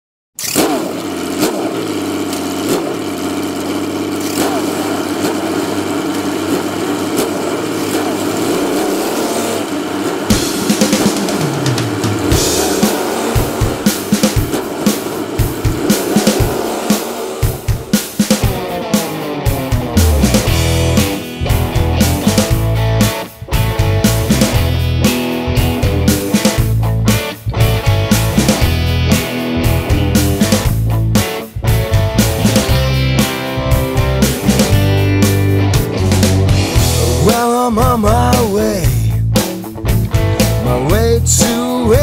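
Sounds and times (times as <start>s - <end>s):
rock music: 0.4s - 42.0s
rising sweeps: 9.0s - 22.7s
steady drum beat: 10.2s - 42.0s.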